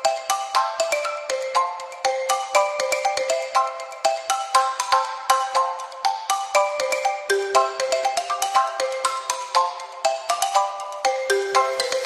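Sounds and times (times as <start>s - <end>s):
bright melody over ticking beat: 0.0s - 12.0s.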